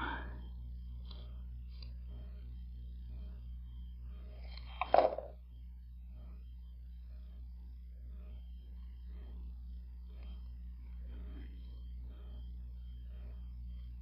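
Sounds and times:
low electrical hum: 0:00.0 - 0:14.0.

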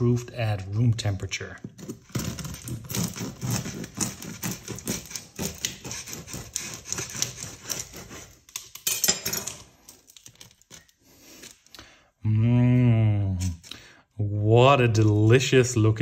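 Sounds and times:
crust crackling: 0:00.0 - 0:08.9
knife sawing through bread crust: 0:01.8 - 0:08.6.

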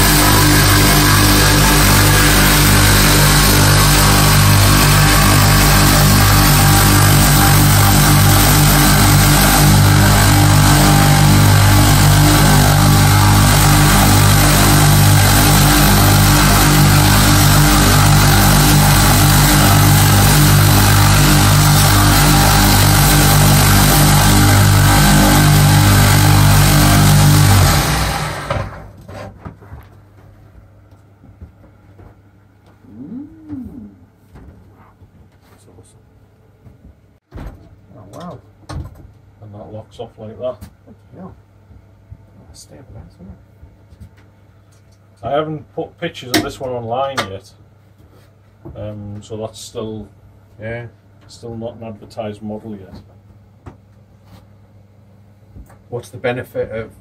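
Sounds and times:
belt grinder motor hum: 0:00.0 - 0:28.9
short vocal call: 0:32.8 - 0:34.1.

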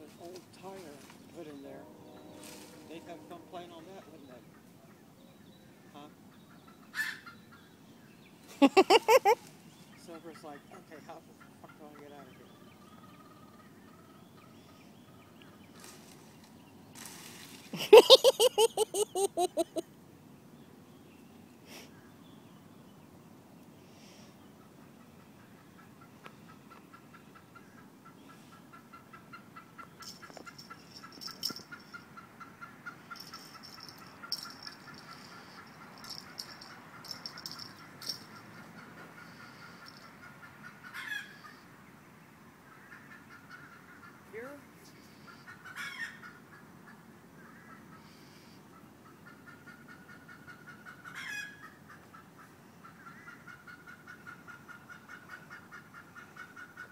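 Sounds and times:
higher buzzing call: 0:01.2 - 0:04.8.

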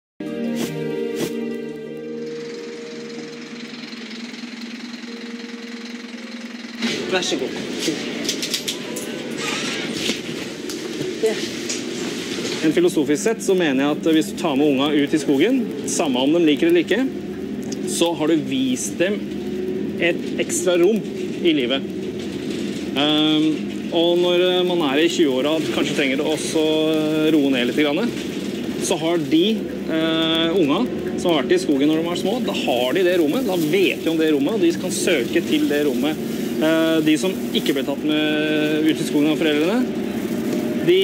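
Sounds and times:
music sting: 0:00.2 - 0:08.2
bus engine and road noise: 0:00.2 - 0:41.0
terminal background noise: 0:00.2 - 0:41.0
bus diesel engine idling: 0:01.8 - 0:09.5.

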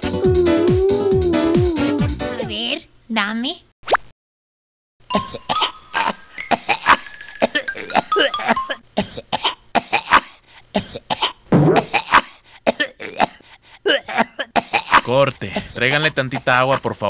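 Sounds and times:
music playing: 0:00.0 - 0:02.5, 0:05.1 - 0:08.8
man coughing: 0:05.1 - 0:16.5.

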